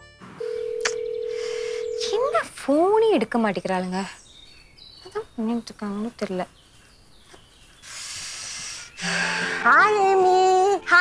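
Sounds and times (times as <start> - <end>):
telephone tone: 0.4 - 2.4
woman speaking on phone: 1.3 - 4.2, 5.1 - 6.5, 9.6 - 11.0.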